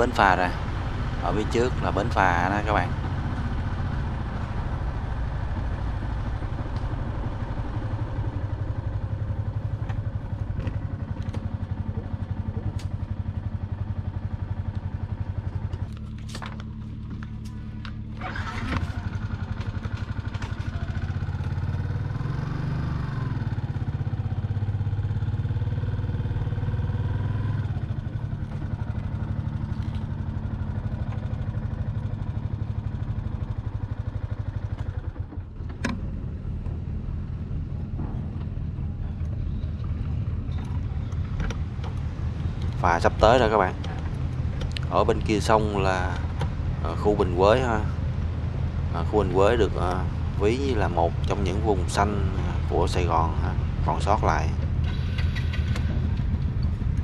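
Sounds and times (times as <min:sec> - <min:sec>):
motorcycle engine idling: 0:00.0 - 0:57.0.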